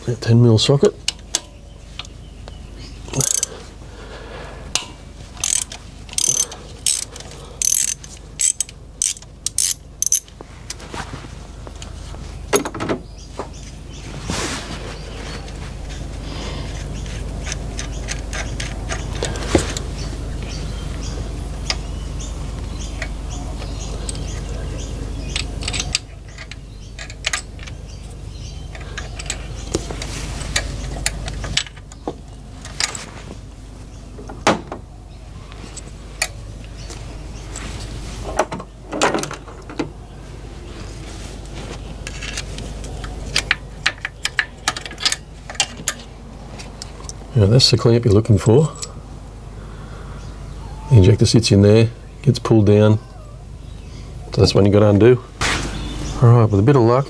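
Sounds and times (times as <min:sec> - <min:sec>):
steady low rumble: 0:00.0 - 0:52.4
ratchet wrench clicking: 0:03.1 - 0:03.5, 0:04.7 - 0:10.3.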